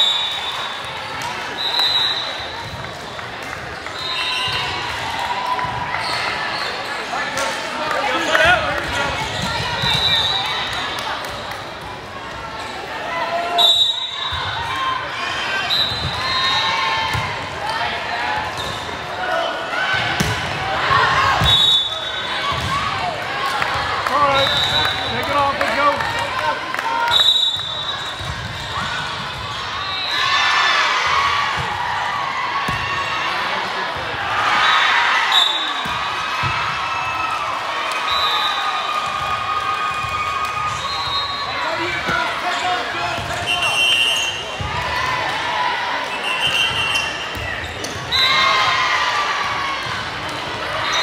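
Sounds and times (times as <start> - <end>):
many voices calling and chatting: 0.0 - 51.0.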